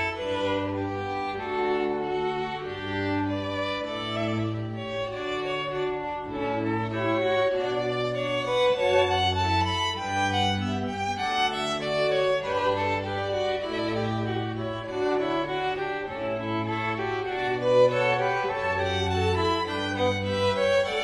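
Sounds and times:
low sustained string notes: 0:00.0 - 0:21.0
violin melody: 0:00.0 - 0:21.0.

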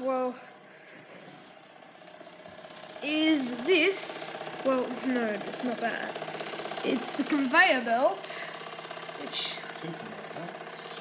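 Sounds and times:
model steam engine running: 0:00.0 - 0:11.0.

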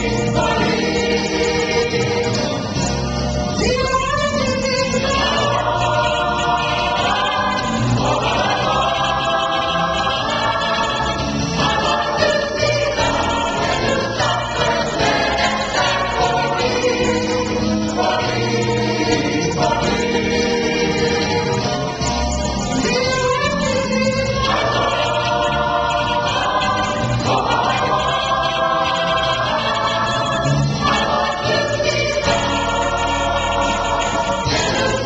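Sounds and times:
choir singing gospel: 0:00.0 - 0:35.0.

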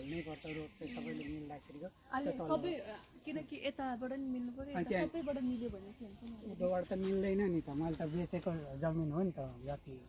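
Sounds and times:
insects droning: 0:00.0 - 0:10.0.

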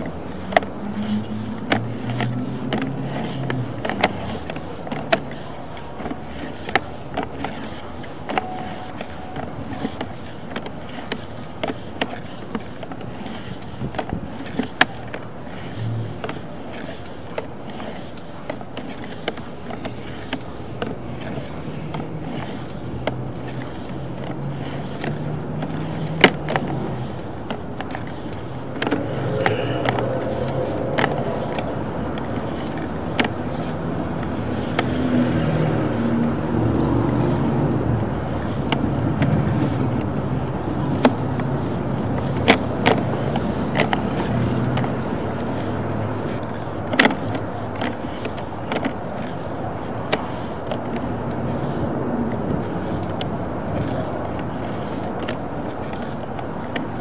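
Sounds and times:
cable clicks and knocks: 0:00.0 - 0:35.4, 0:37.2 - 0:57.0
steady low rumble: 0:28.7 - 0:33.2.

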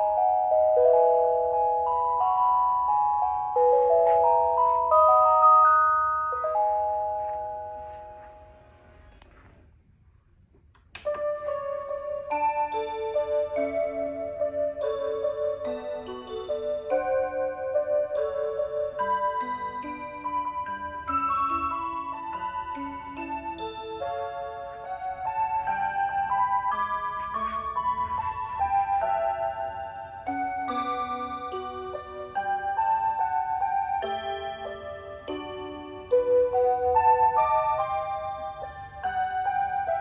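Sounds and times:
clock playing electronic melody: 0:00.0 - 0:08.8, 0:11.1 - 0:40.0.

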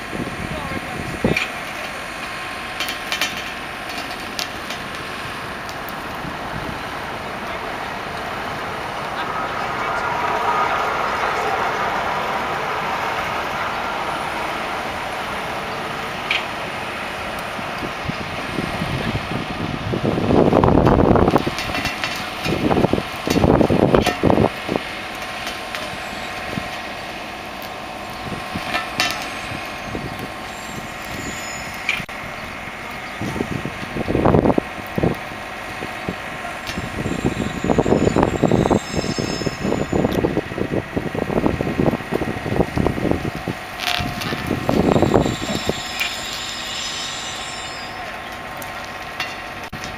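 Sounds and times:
diesel lorry engine running: 0:00.0 - 0:49.9
engine rumbling bursts: 0:00.0 - 0:49.9.

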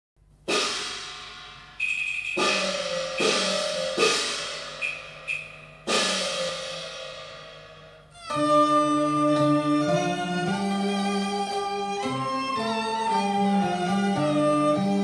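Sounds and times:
crashing cymbal and gong strikes: 0:00.5 - 0:08.0
light high ringing strokes: 0:01.8 - 0:06.3.

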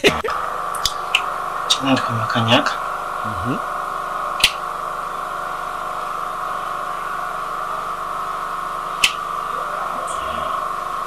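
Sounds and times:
steady hum: 0:00.0 - 0:11.0
short sharp clicks: 0:04.4 - 0:04.6.

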